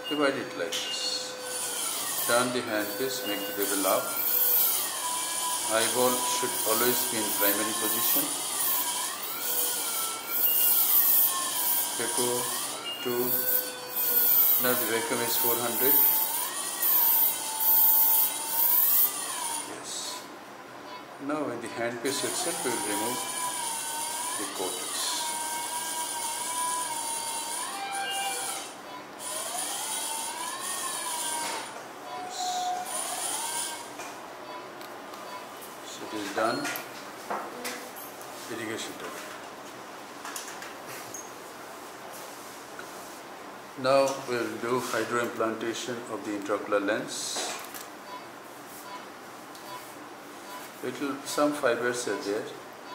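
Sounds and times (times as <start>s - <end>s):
wavering electronic feedback tone: 0.0s - 20.2s, 22.1s - 28.7s
thin high whine: 0.0s - 21.1s, 22.0s - 36.8s.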